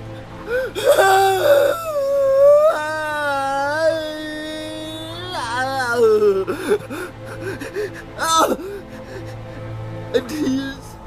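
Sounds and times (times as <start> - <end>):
person wailing: 0.6 - 7.1, 8.2 - 8.8.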